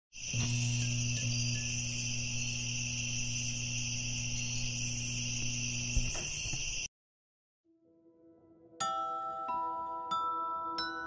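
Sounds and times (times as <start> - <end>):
crickets chirring: 0.2 - 6.9.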